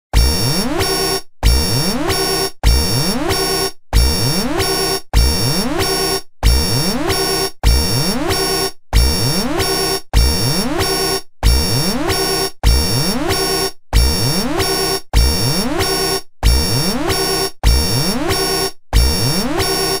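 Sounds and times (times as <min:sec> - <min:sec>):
electronic alarm with rising sweep: 0:00.4 - 0:20.0.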